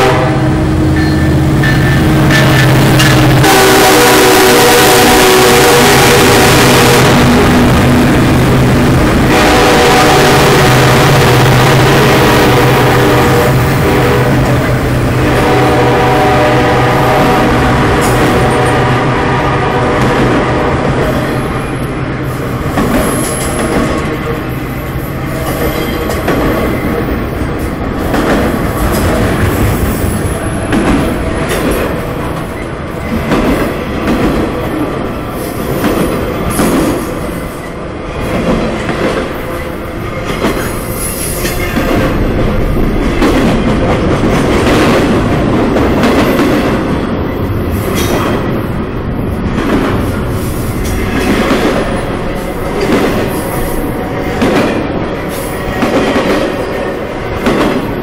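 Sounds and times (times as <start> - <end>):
steel wheels rumbling on rail: 0.0 - 58.0.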